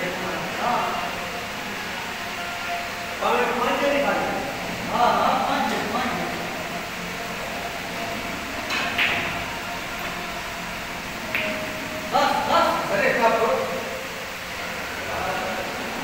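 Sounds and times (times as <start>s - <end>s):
steady background hum: 0.0s - 16.0s.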